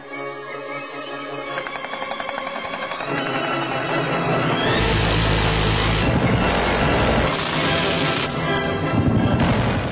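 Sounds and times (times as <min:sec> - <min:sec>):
machine gun firing: 0:09.3 - 0:09.9.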